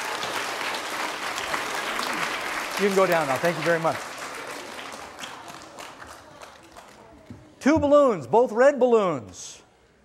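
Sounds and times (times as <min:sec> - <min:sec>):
audience applause: 0:00.0 - 0:07.2.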